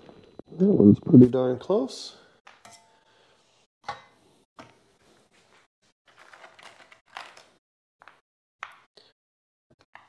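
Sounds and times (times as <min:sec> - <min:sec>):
rustling of parts: 0:05.2 - 0:08.2.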